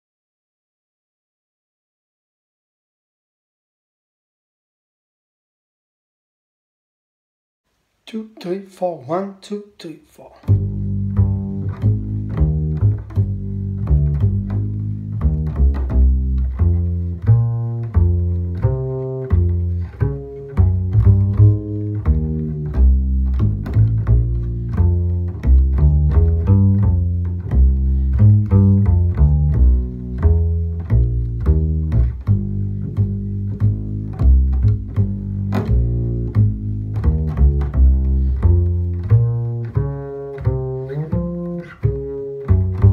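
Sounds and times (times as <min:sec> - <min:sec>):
pizzicato double bass walking line: 0:10.4 - 0:42.9.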